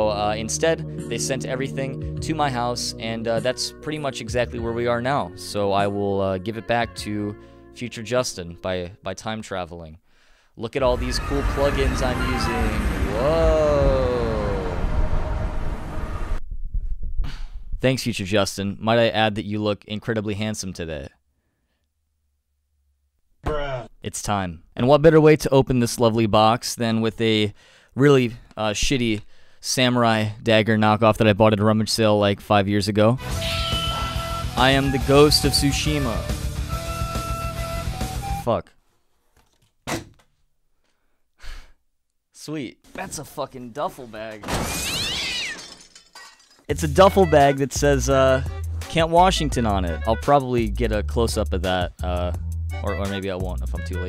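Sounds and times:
rumbling whoosh: 0:10.8 - 0:17.8
processed voice saying whoa: 0:11.0 - 0:15.1
short breathy exhale: 0:17.2 - 0:17.7.

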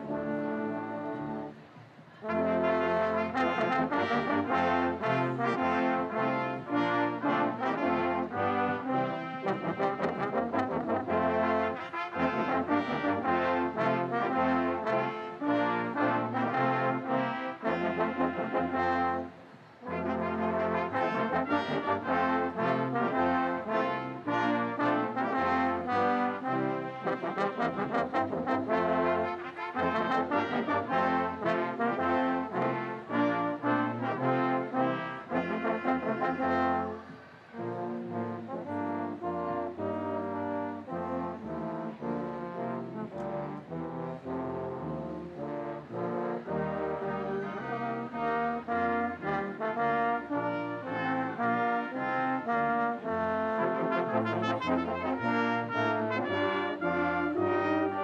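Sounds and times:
brass ensemble playing: 0:00.0 - 0:58.0.

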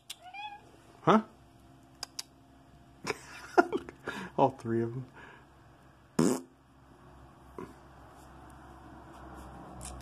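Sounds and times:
cat meowing: 0:00.2 - 0:00.7.

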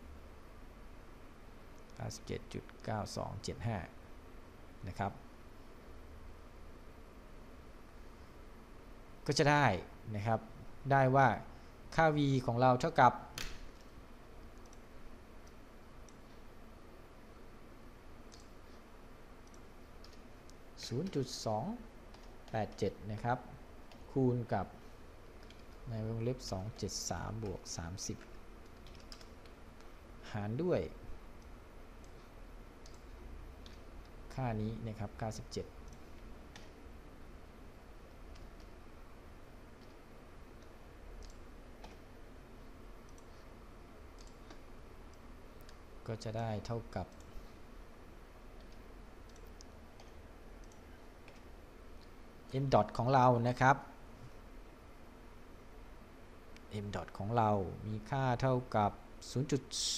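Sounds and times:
low room noise: 0:00.0 - 0:59.9
man speaking: 0:02.0 - 0:04.0, 0:04.8 - 0:05.2, 0:20.8 - 0:21.9, 0:22.5 - 0:24.8, 0:25.9 - 0:28.2, 0:30.2 - 0:31.0, 0:34.3 - 0:35.8, 0:46.1 - 0:47.1, 0:56.7 - 0:59.9
computer mouse clicks: 0:13.4 - 0:16.3, 0:18.3 - 0:18.8, 0:19.4 - 0:21.2, 0:22.1 - 0:22.9, 0:25.4 - 0:25.8, 0:26.8 - 0:30.0, 0:31.4 - 0:34.2, 0:35.8 - 0:36.8, 0:38.3 - 0:38.8, 0:39.7 - 0:40.0, 0:40.6 - 0:42.1, 0:43.0 - 0:43.5, 0:44.1 - 0:45.8, 0:47.1 - 0:47.4, 0:48.6 - 0:52.2
mouse and keyboard clicks: 0:40.6 - 0:42.0.

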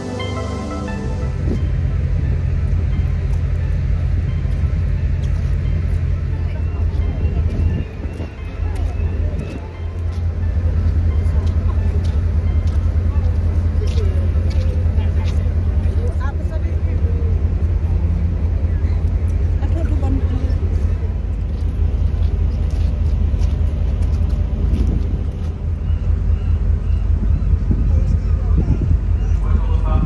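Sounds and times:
faint passengers' voices: 0:00.0 - 0:30.0
ferry deck low rumble: 0:00.9 - 0:30.0.

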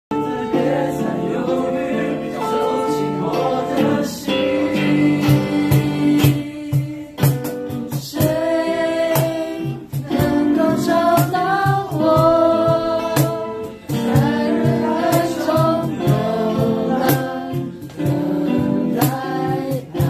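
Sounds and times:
acoustic guitars: 0:00.1 - 0:20.0
person singing: 0:00.1 - 0:20.0
steady percussion beat: 0:02.6 - 0:20.0.

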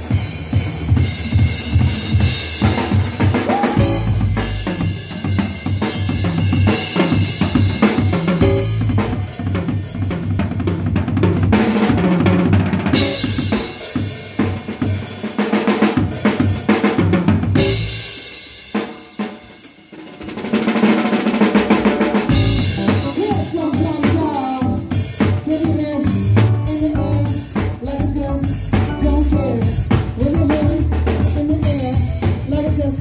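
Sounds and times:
bass guitar: 0:00.0 - 0:14.1, 0:17.1 - 0:18.2, 0:21.5 - 0:33.0
drums groove: 0:00.0 - 0:33.0.

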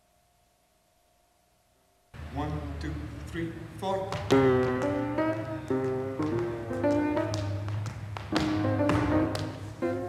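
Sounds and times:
tap shoes on wooden floor: 0:04.0 - 0:10.0
classical-style music: 0:04.1 - 0:10.0.

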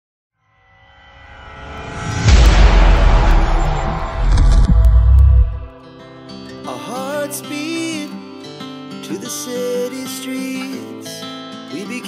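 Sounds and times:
cinematic riser drone: 0:00.9 - 0:05.8.

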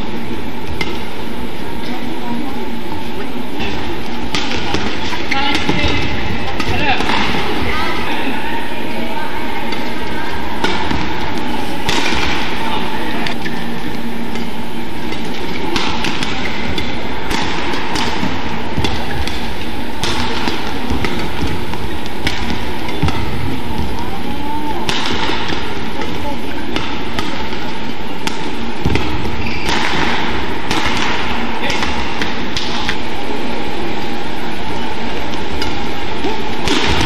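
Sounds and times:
players' footwork: 0:00.0 - 0:37.0
spectators' voices: 0:00.0 - 0:37.0
racket hitting shuttlecock: 0:00.6 - 0:02.0, 0:03.6 - 0:37.0.

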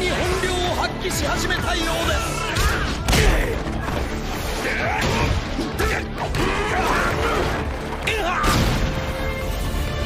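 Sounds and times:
fight scene music: 0:00.0 - 0:10.0.

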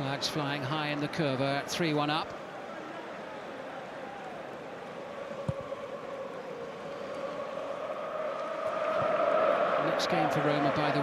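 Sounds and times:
stadium crowd noise: 0:00.0 - 0:11.0
crowd chanting: 0:02.5 - 0:11.0.

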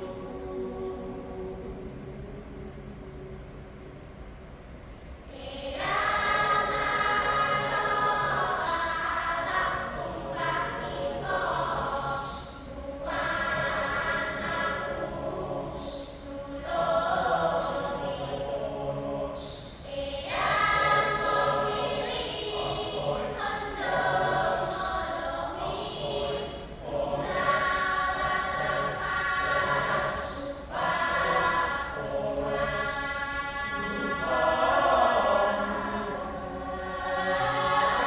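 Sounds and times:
choir singing folk song: 0:00.0 - 0:03.1, 0:05.3 - 0:38.0.

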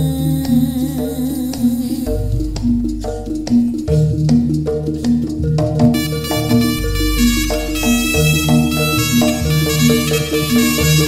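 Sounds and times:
held low drone tone: 0:00.0 - 0:11.0
stepping melody: 0:00.3 - 0:11.0
sharp percussion strikes: 0:02.0 - 0:11.0.

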